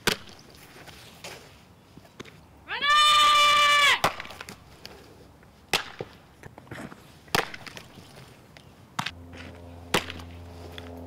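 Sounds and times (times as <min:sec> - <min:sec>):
high-pitched human shout: 0:02.7 - 0:04.0.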